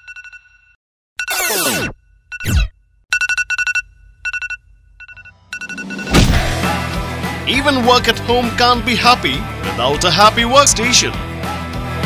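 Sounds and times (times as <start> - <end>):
phone alarm two-tone beeps: 3.2 - 6.2.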